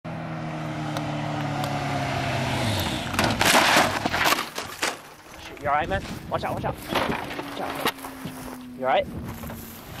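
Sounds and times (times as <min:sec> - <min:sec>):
motorcycle crashing scrape: 0:02.6 - 0:06.2, 0:06.8 - 0:08.6
motorcycle engine running: 0:06.7 - 0:10.0.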